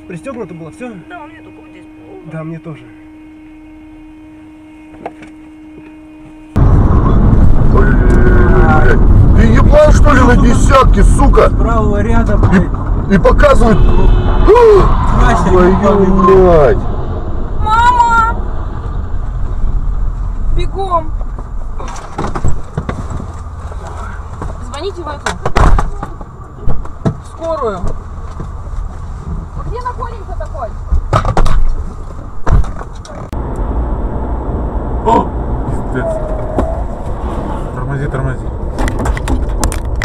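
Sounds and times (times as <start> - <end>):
car engine and road noise: 0.0 - 40.0
sharp knocks and clatters: 38.6 - 40.0.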